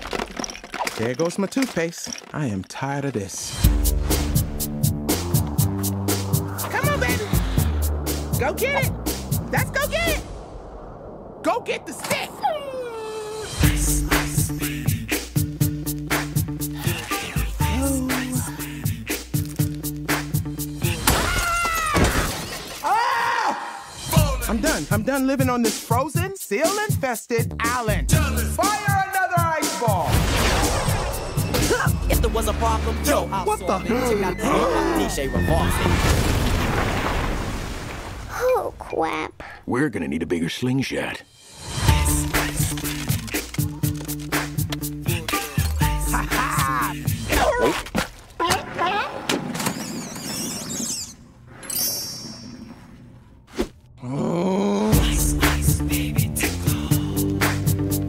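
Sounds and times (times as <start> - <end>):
ice shattering crash: 0.0 - 2.7, 21.0 - 23.0, 30.1 - 31.6, 35.6 - 38.3.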